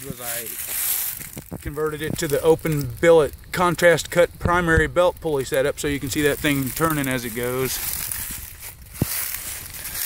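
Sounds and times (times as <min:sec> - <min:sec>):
footsteps crunching through dry leaves: 0:00.0 - 0:02.9, 0:06.2 - 0:10.0.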